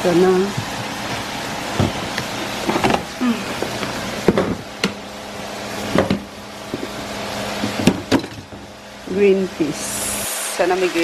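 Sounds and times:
plastic boxes clicking and knocking: 0:01.8 - 0:05.0.

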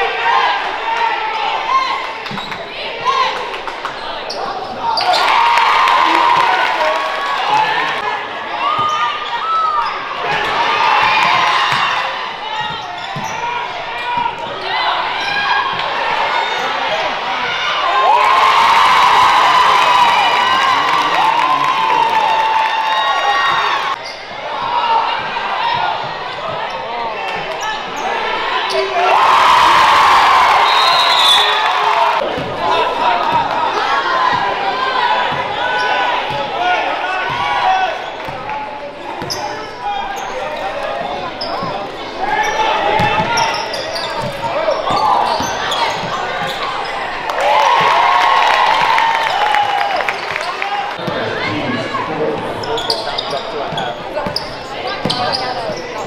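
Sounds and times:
sneakers squeaking: 0:01.7 - 0:05.4, 0:08.6 - 0:17.5, 0:22.9 - 0:29.1, 0:35.2 - 0:47.9, 0:52.2 - 0:56.0.

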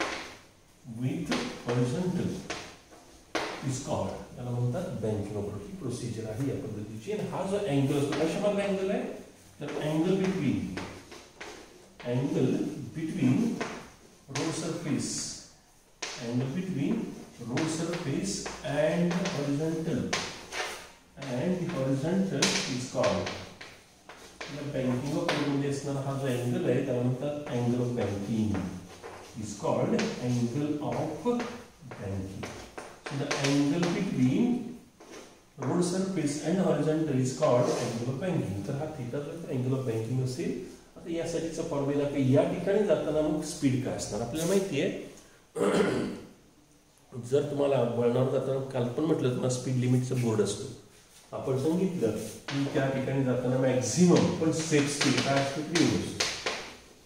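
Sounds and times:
man lecturing: 0:00.7 - 0:02.8, 0:03.4 - 0:23.6, 0:24.2 - 0:46.4, 0:47.1 - 0:56.4
man speaking: 0:00.8 - 0:02.7, 0:03.6 - 0:11.0, 0:12.0 - 0:20.4, 0:21.2 - 0:23.6, 0:24.4 - 0:34.9, 0:35.6 - 0:46.4, 0:47.1 - 0:56.3
chalk tapping on blackboard: 0:16.0 - 0:25.6, 0:54.1 - 0:56.8
chalk scraping on blackboard: 0:20.2 - 0:21.0.

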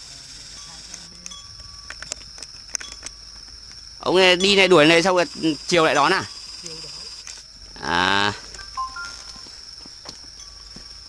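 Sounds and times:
high insect trill: 0:00.0 - 0:11.0.

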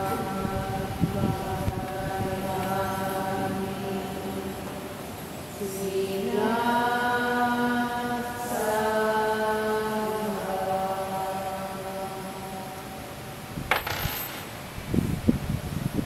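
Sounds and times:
group of voices chanting: 0:00.0 - 0:12.5.

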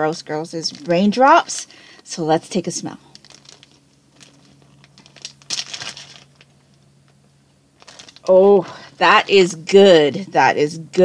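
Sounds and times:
plastic bag crinkling: 0:03.0 - 0:06.8, 0:07.8 - 0:08.9.

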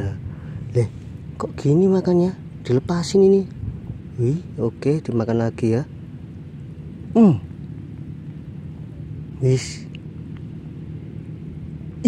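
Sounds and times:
distant engine hum: 0:00.0 - 0:12.0.

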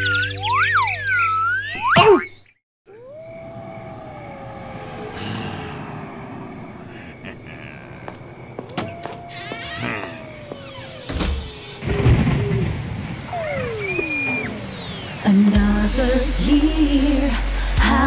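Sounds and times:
eerie downward sliding tones: 0:02.9 - 0:17.3.

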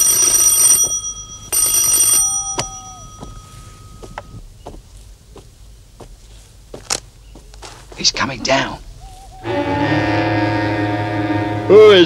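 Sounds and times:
electric doorbell ringing: 0:00.0 - 0:04.4.

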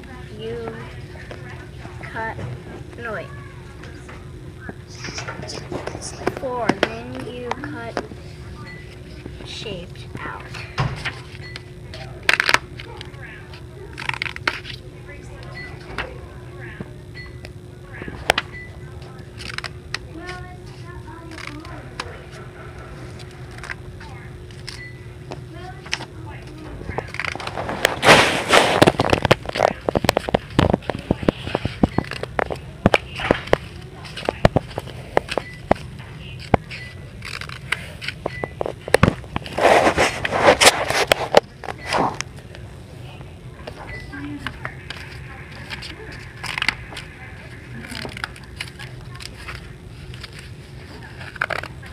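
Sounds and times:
steady low hum: 0:00.0 - 0:51.9
paper rustling: 0:19.4 - 0:23.8, 0:25.6 - 0:42.2, 0:44.4 - 0:51.9
scissors snipping paper: 0:21.1 - 0:22.1, 0:27.0 - 0:39.2, 0:47.8 - 0:51.9.

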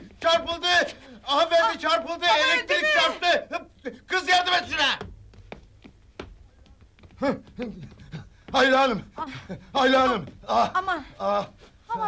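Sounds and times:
low room noise: 0:00.0 - 0:12.0
faint sharp taps and knocks: 0:05.0 - 0:08.7.

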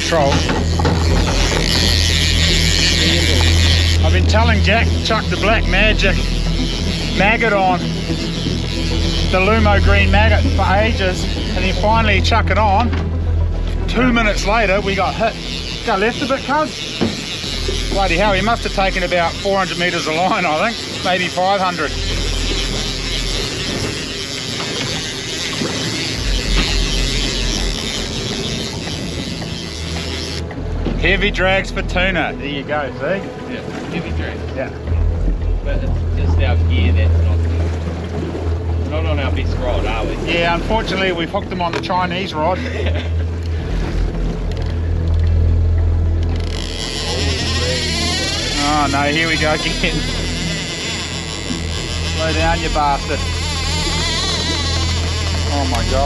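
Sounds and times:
fishing reel ratcheting: 0:00.0 - 0:32.7, 0:39.2 - 0:56.0
outboard motors humming: 0:00.0 - 0:56.0
water noise: 0:00.0 - 0:56.0
wind: 0:00.0 - 0:56.0.

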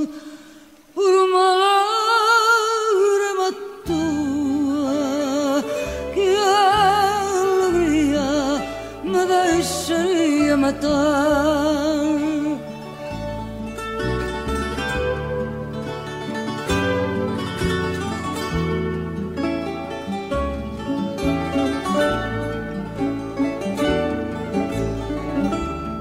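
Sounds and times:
classical guitar bass and chords: 0:03.8 - 0:26.0
plucked guitar melody: 0:03.8 - 0:26.0.

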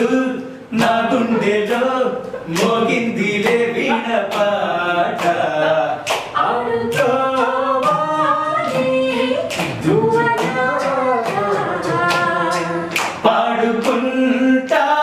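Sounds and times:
group singing unaccompanied: 0:00.0 - 0:15.0.

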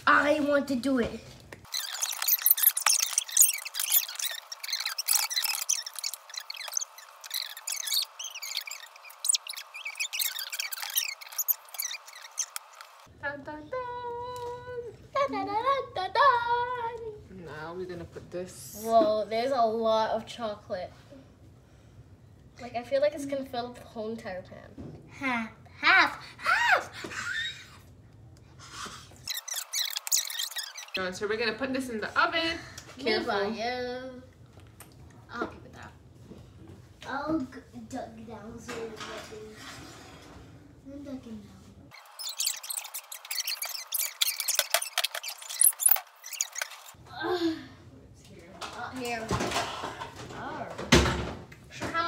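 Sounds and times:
spatula scraping glass bowl: 0:01.7 - 0:12.9, 0:29.3 - 0:31.0, 0:42.0 - 0:47.0
sped-up squeaky voices: 0:01.7 - 0:13.1, 0:29.3 - 0:31.0, 0:41.9 - 0:47.0.

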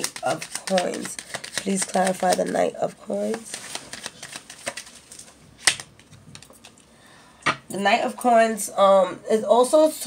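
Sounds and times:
cards clicking: 0:00.0 - 0:06.8.

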